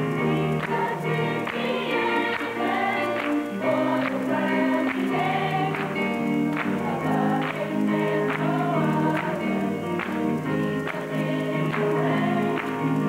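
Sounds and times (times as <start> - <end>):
children's choir singing gospel: 0.0 - 13.0
instrumental accompaniment with beat: 0.0 - 13.0.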